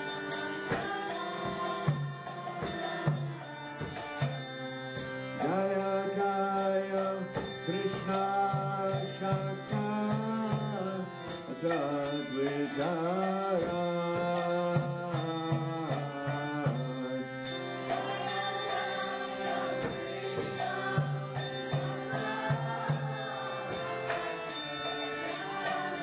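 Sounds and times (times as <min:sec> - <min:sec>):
hand cymbals striking: 0:00.0 - 0:26.0
sustained drone: 0:14.4 - 0:26.0.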